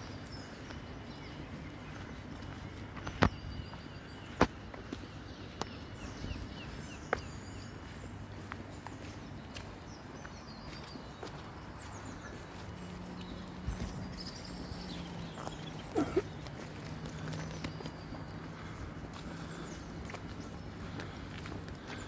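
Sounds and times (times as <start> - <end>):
faint birdsong: 0.0 - 22.0
footsteps on gravel: 0.0 - 22.0.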